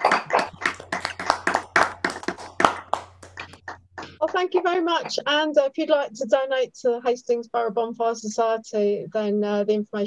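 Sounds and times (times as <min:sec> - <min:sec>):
people clapping: 0:00.0 - 0:04.5.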